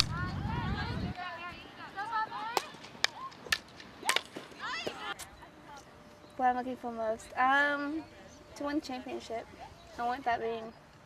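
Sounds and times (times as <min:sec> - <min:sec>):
faint players' voices: 0:00.0 - 0:11.0
hockey sticks cracking balls: 0:02.5 - 0:05.3.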